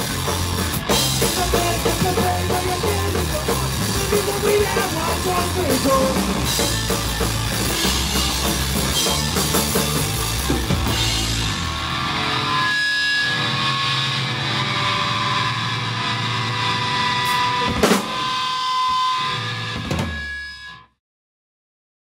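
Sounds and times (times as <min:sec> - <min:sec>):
drum and cymbal hits: 0:00.0 - 0:11.8, 0:17.6 - 0:18.8
punk rock band playing: 0:00.0 - 0:20.5.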